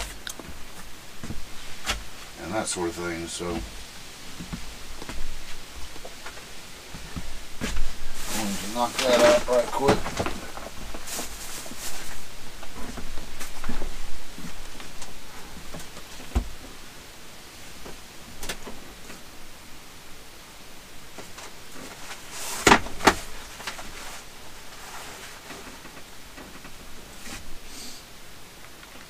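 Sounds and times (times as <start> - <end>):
household items rustling and clicking: 7.0 - 16.7
dull thump: 16.2 - 16.7.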